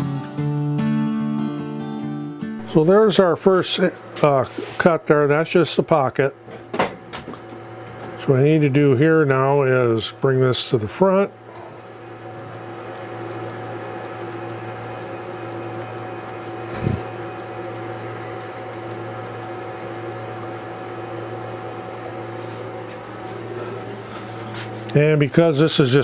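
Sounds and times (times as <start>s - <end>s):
cnc router motor hum: 2.6s - 26.0s.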